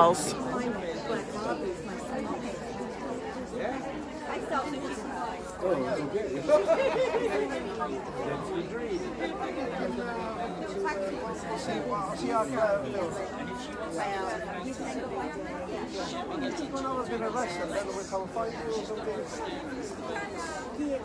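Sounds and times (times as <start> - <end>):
background chatter of people: 0.0 - 21.0.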